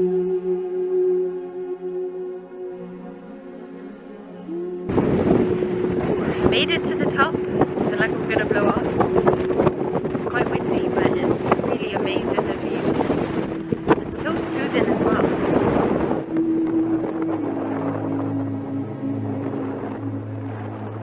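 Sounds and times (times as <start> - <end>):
soft ambient music drone: 0.0 - 21.0
wind on microphone: 4.5 - 21.0
woman's voice: 6.1 - 8.9, 10.0 - 13.0, 14.0 - 15.4.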